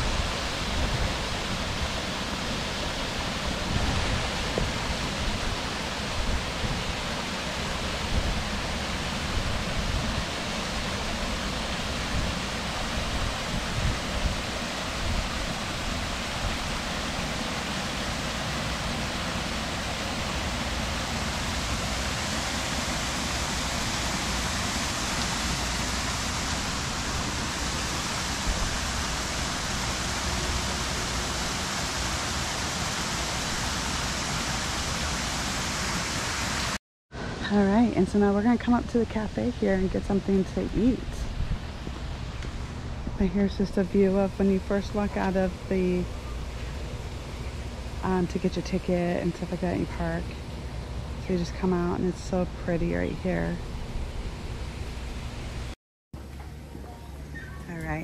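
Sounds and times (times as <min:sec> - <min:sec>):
waterfall splashing into pond: 0:00.0 - 0:36.8.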